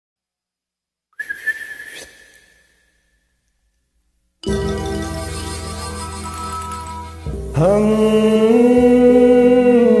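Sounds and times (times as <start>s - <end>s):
high whistle-like note: 1.2s - 3.0s.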